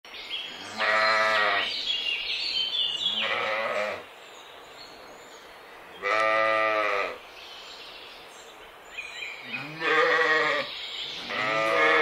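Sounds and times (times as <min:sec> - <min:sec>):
sheep bleating: 0:00.6 - 0:01.7, 0:03.1 - 0:04.0, 0:06.0 - 0:07.2, 0:09.5 - 0:12.0.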